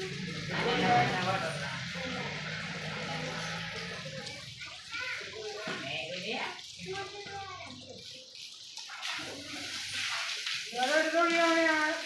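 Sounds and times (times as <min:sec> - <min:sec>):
hose jet spraying water: 0:00.0 - 0:12.0
people talking: 0:00.0 - 0:12.0
water splashing on wet concrete: 0:00.0 - 0:12.0.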